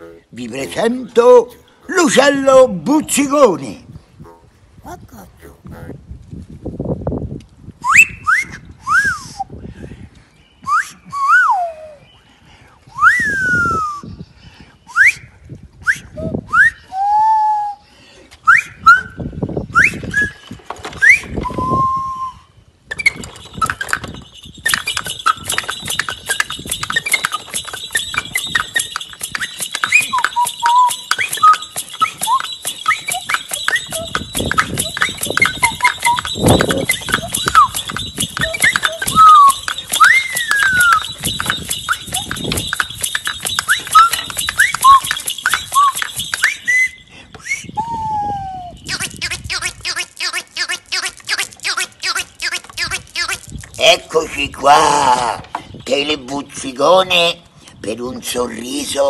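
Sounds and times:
whistled bird-like chirps: 7.8s - 9.5s, 10.3s - 12.3s, 12.9s - 49.8s
chorus of chirps and twitters: 22.8s - 47.1s, 48.7s - 55.0s
fast steady crackling: 24.4s - 46.6s.

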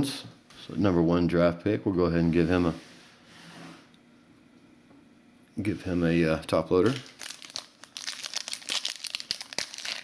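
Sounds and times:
hands rustling trading cards: 7.0s - 10.0s.

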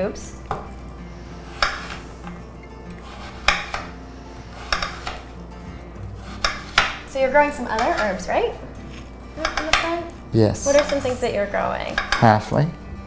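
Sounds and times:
knife striking glass board: 3.4s - 3.9s, 4.7s - 5.2s.

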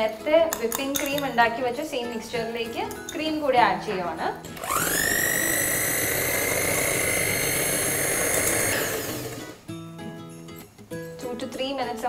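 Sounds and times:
background music: 0.0s - 12.0s
electric hand mixer whine: 4.6s - 9.6s.

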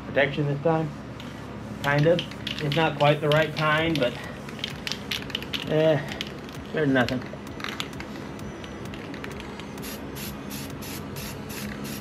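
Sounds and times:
spray paint can hissing: 9.8s - 12.0s.

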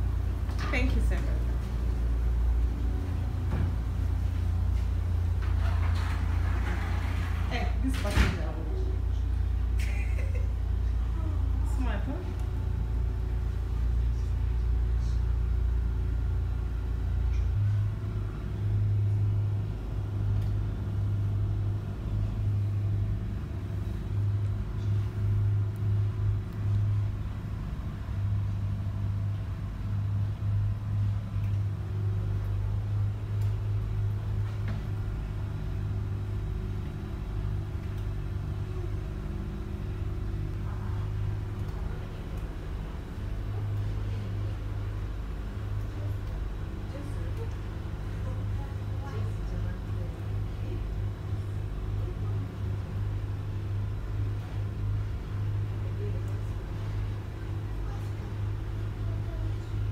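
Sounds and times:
boat engine rumble: 0.0s - 59.9s.

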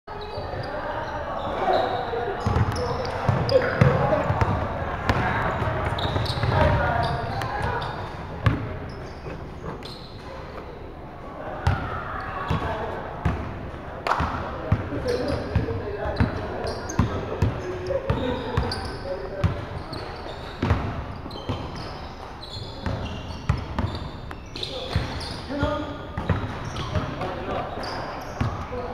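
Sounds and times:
players calling out: 0.2s - 9.2s.

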